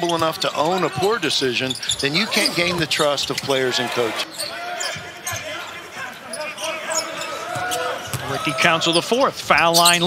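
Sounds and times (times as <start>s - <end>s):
voices murmuring: 0.0s - 10.0s.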